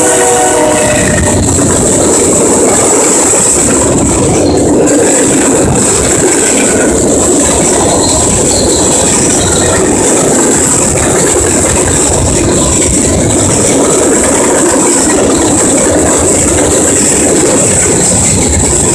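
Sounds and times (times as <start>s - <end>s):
train wheels rumbling on rails: 0.0s - 18.9s.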